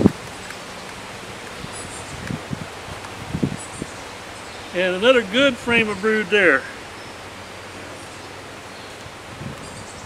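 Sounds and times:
leaves rustling in wind: 0.0s - 10.0s.

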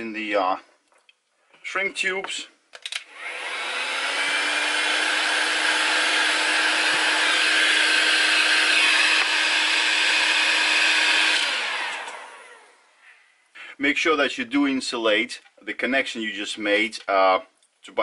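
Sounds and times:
heat gun blowing: 3.0s - 12.9s.

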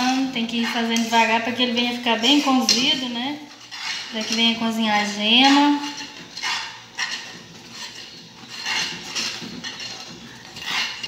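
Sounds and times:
metal utensil scraping a saucepan: 0.0s - 11.0s.

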